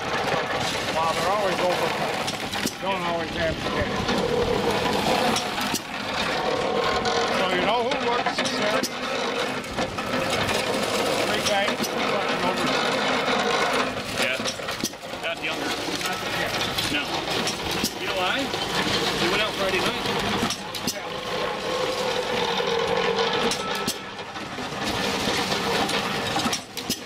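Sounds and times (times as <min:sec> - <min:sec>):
mechanical running noise: 0:00.0 - 0:27.0
people talking: 0:00.9 - 0:02.2, 0:02.8 - 0:04.2, 0:07.3 - 0:08.9, 0:11.2 - 0:12.9, 0:14.2 - 0:14.6, 0:15.2 - 0:17.2, 0:17.8 - 0:18.5, 0:19.2 - 0:20.2, 0:20.8 - 0:21.2.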